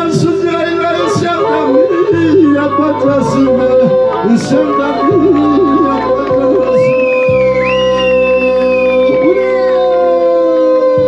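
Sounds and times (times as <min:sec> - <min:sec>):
person singing long held note: 0:07.9 - 0:11.0.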